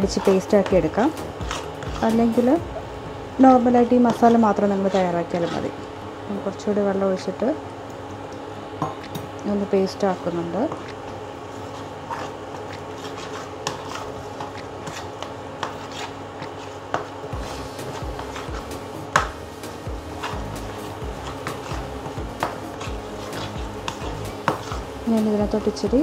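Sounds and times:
metal spoon scraping a bowl: 0.0 - 2.5, 4.1 - 5.8, 12.1 - 16.8, 20.1 - 24.9
background music: 0.0 - 3.9, 17.3 - 26.0.

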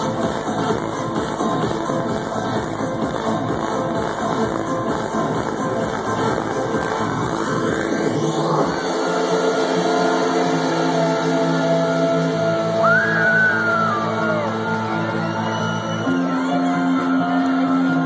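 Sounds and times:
held synth chords: 0.0 - 15.4
house music mix: 0.0 - 18.0.

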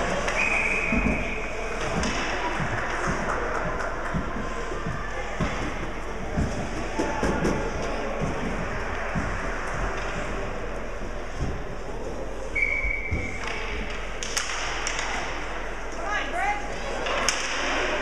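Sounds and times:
indistinct echoing voices: 0.0 - 18.0.

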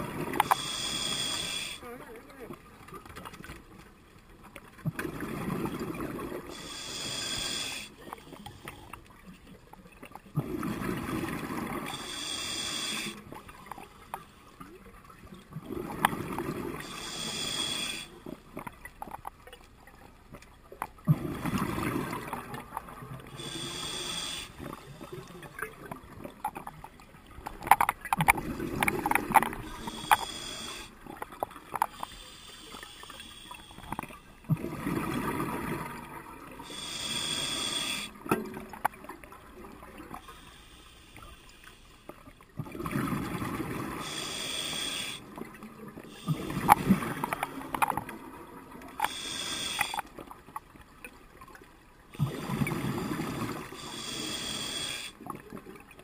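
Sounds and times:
exhaled air bubbling underwater: 0.0 - 56.0
regulator inhalation hiss: 0.4 - 1.8, 6.5 - 8.0, 11.9 - 13.2, 16.8 - 18.1, 23.4 - 25.1, 29.6 - 31.0, 31.9 - 34.0, 36.6 - 38.2, 40.2 - 42.1, 44.0 - 45.3, 49.0 - 50.1, 53.8 - 55.2.

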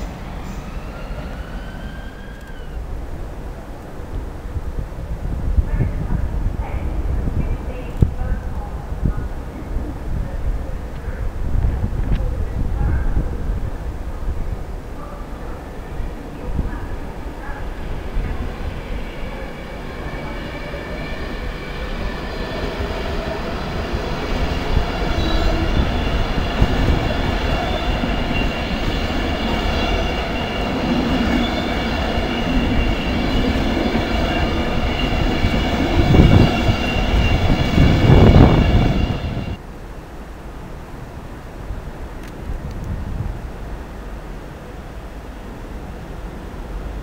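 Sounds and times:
electric train traction whine: 0.0 - 3.0, 17.6 - 39.6
background noise: 0.0 - 31.4, 39.6 - 47.0
train wheels rumbling and clattering: 16.4 - 39.6.

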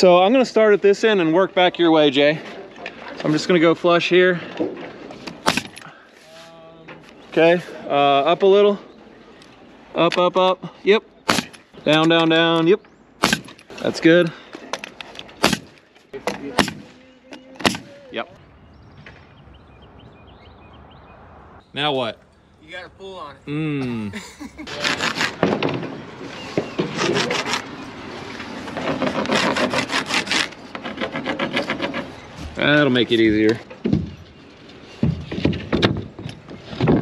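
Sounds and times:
nail gun shots: 5.4 - 5.8, 11.3 - 11.6, 13.2 - 13.7, 15.4 - 15.8, 16.4 - 17.0, 17.6 - 18.0.

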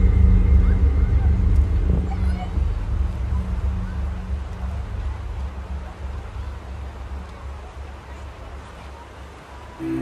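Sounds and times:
faint distant voices: 0.0 - 10.0
loud uneven low rumble: 0.0 - 10.0.

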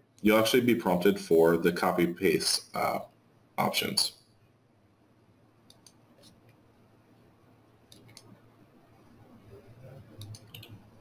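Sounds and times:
low steady hum: 0.0 - 11.0
computer clicks: 5.7 - 6.4, 7.9 - 8.3, 10.2 - 10.8.

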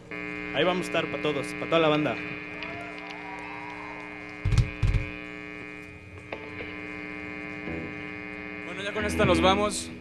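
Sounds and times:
amplifier electric hum and buzz: 0.0 - 10.0.

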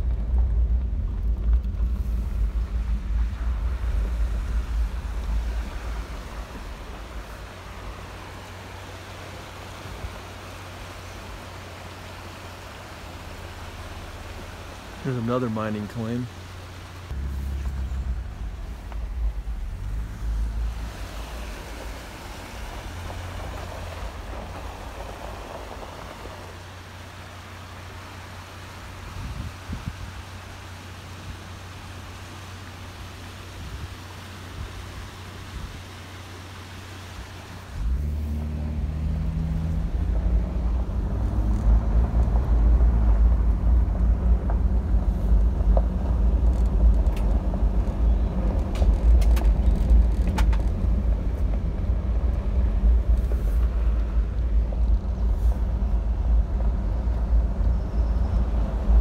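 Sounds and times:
gravel ticks: 0.0 - 16.3, 16.9 - 28.6, 37.8 - 59.0
vehicle driving on gravel: 0.0 - 59.0.

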